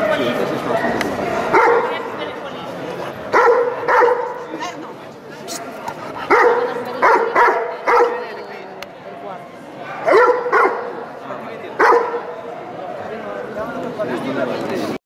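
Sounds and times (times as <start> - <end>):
crowd chatter: 0.0 - 15.0
dog barking: 1.5 - 2.0, 3.3 - 4.4, 6.3 - 8.3, 10.0 - 11.0, 11.8 - 12.3.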